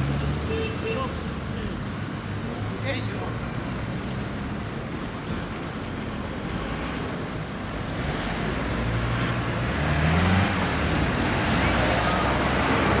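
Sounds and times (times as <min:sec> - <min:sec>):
steady road noise: 0:00.0 - 0:13.0
car engine passing: 0:06.4 - 0:13.0.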